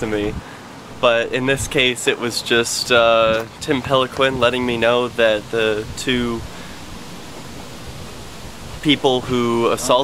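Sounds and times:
man talking: 0.0 - 6.6, 8.8 - 10.0
steady outdoor hiss: 0.0 - 10.0.

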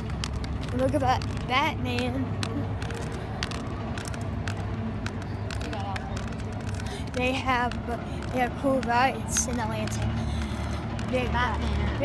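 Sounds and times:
sharp clicks: 0.0 - 12.0.

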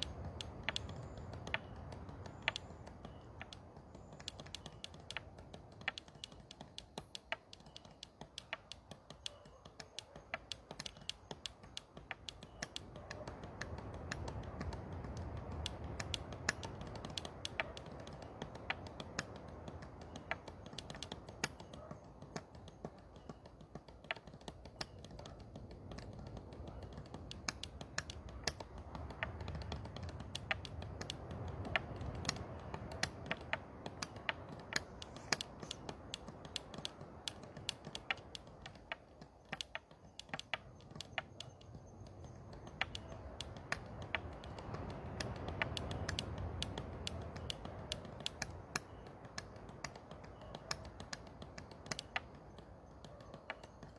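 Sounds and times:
sharp clicks and ticks: 0.0 - 53.9.

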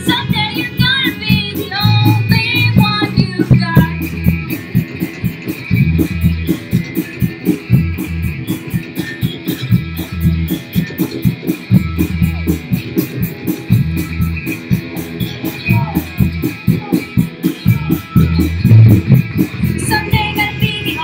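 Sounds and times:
bass guitar: 0.0 - 21.0
drum beat with cymbals: 0.0 - 21.0
electric guitars: 0.0 - 21.0.

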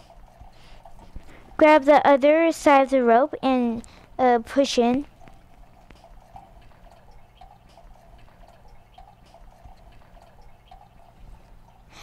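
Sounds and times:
trickling water: 0.0 - 12.0
faint clicks: 4.9 - 11.8
low hum: 5.0 - 12.0.

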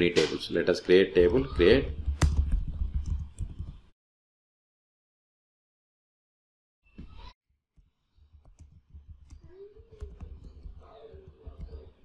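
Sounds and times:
keyboard typing: 8.1 - 12.0.

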